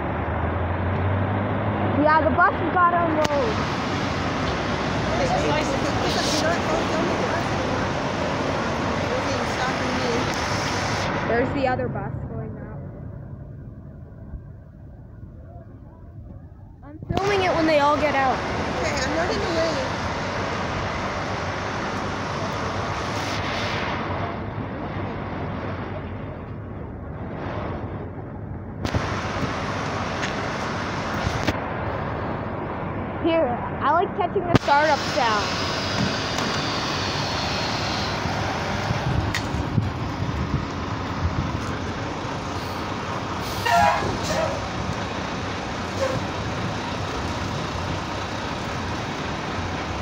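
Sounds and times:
buses running: 0:00.0 - 0:50.0
outdoor rumble: 0:00.0 - 0:50.0
street traffic: 0:00.0 - 0:50.0
people talking: 0:02.0 - 0:03.6, 0:05.0 - 0:08.2, 0:08.9 - 0:10.5, 0:11.2 - 0:12.9, 0:15.4 - 0:20.0, 0:33.2 - 0:35.6
wind buffeting microphone: 0:11.1 - 0:20.0, 0:38.2 - 0:50.0.

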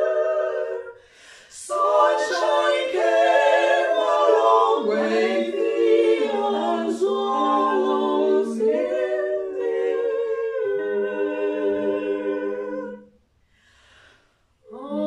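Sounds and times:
women singing a cappella harmony: 0:00.0 - 0:13.1, 0:14.6 - 0:15.0.

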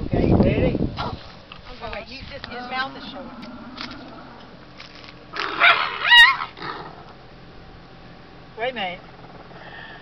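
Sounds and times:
dog harsh outburst: 0:05.4 - 0:07.0
dog yelping: 0:05.4 - 0:07.1.

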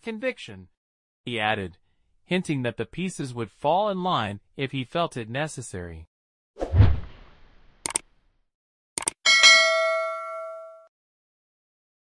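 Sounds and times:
notification bell ding: 0:09.3 - 0:10.9.

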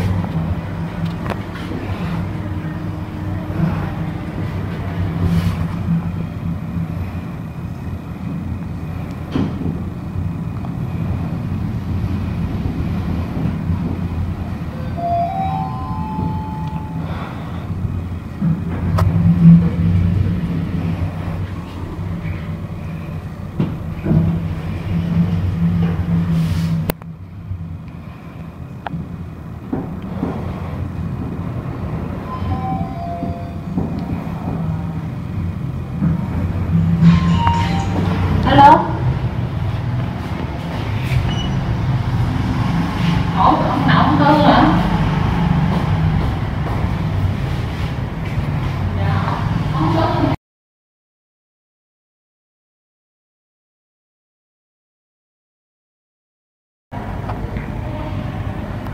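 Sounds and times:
lift ride hum and rumble: 0:00.0 - 0:50.4, 0:57.0 - 0:58.9
rising tones: 0:14.7 - 0:17.4, 0:37.0 - 0:38.5.

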